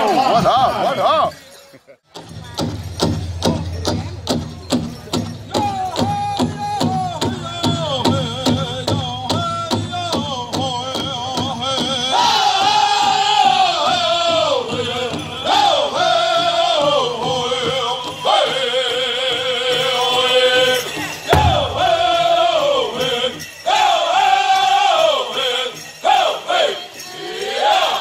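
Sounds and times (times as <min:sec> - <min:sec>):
group singing high-pitched: 0:11.7 - 0:28.0
large drum beats: 0:21.3 - 0:23.1.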